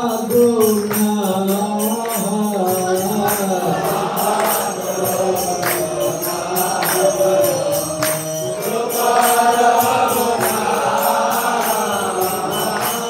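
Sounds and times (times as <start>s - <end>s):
man chanting: 0.0s - 8.6s
hand cymbals struck: 0.0s - 13.0s.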